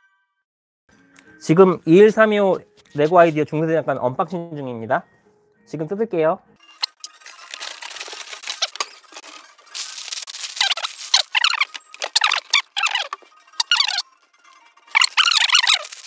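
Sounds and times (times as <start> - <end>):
plastic squeaking on plastic: 6.8 - 14.1, 14.9 - 16.0
plastic bags crinkling: 7.0 - 14.0, 14.9 - 16.0.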